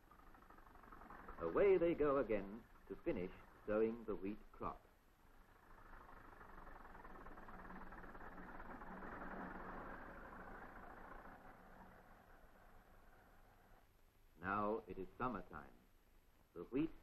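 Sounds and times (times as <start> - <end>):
muffled tractor engine running: 0.0 - 15.8.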